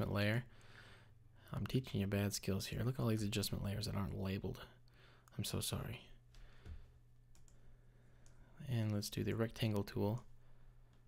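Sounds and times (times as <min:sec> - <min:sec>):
low steady hum: 0:00.0 - 0:11.0
computer mouse clicks: 0:07.3 - 0:07.6.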